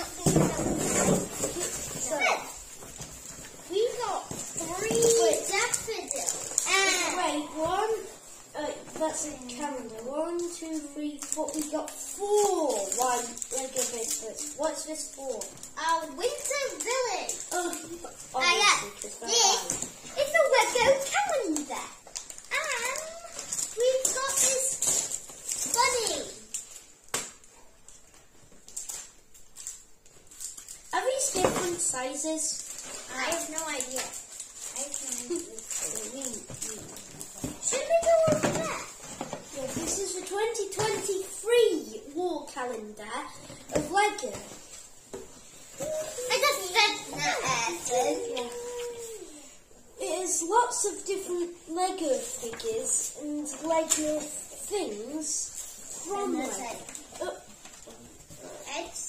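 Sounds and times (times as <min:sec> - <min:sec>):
cardboard boxes rustling and tapping: 0:00.1 - 0:02.2
children's excited voices: 0:14.6 - 0:21.8, 0:45.9 - 0:55.4.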